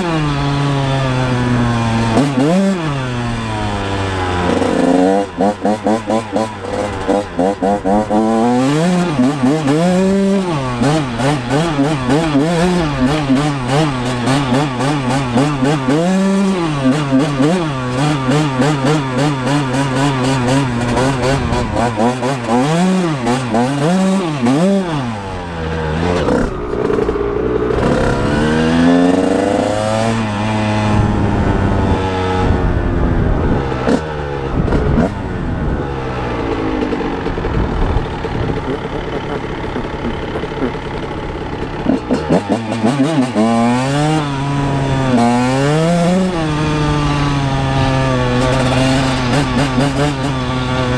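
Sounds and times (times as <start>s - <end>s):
two-stroke motorcycle engine revving: 0.0s - 50.9s.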